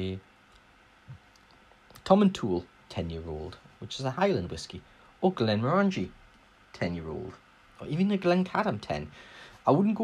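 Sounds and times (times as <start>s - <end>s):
man speaking: 0.0s - 0.2s, 2.0s - 10.0s
faint small clicks: 0.5s - 2.1s.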